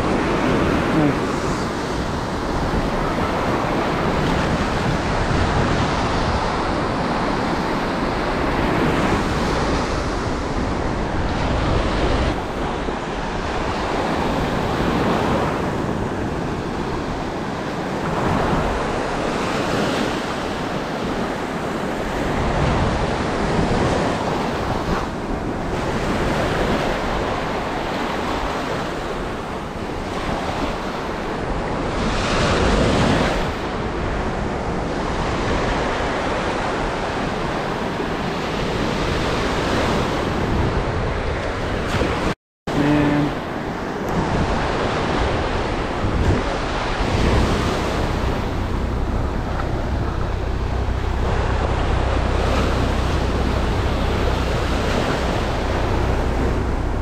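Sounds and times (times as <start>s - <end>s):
ocean surf breaking on beach: 0.0s - 57.0s.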